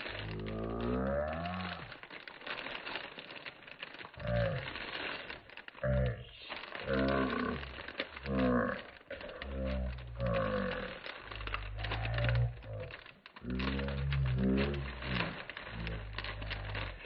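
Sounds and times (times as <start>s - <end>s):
plastic packaging crinkling: 0.0s - 17.0s
low wordless gliding voice: 5.8s - 7.6s.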